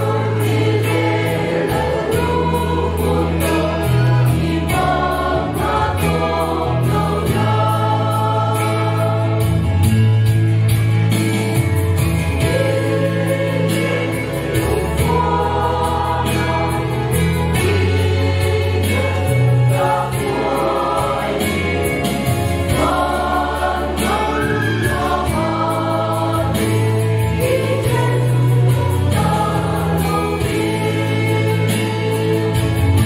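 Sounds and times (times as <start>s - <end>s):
choir singing a hymn: 0.0s - 10.2s, 11.4s - 33.0s
low instrumental accompaniment: 0.0s - 33.0s.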